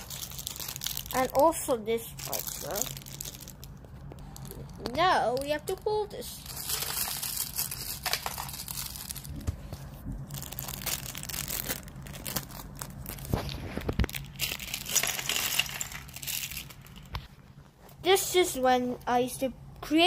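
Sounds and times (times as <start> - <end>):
plastic packaging crinkling: 0.0 - 17.3.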